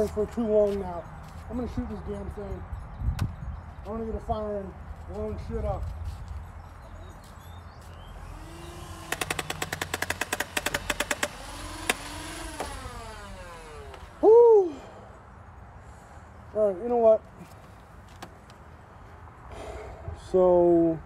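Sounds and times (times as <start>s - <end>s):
blaster motors whining: 8.2s - 14.2s
rapid toy blaster shots: 8.5s - 13.9s.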